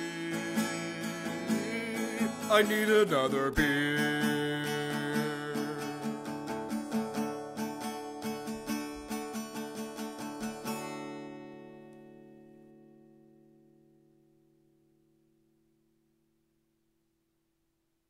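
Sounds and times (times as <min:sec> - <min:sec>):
guitar picking: 0:00.0 - 0:16.0.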